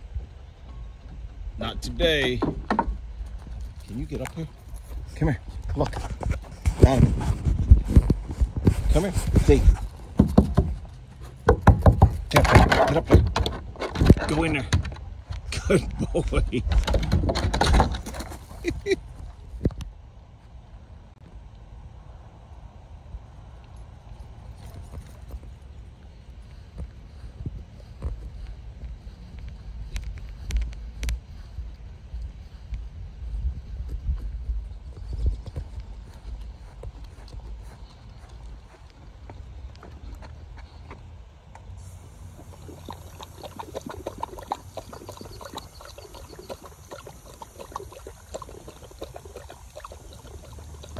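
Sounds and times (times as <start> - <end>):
dog lapping and gulping water: 41.8 - 50.9.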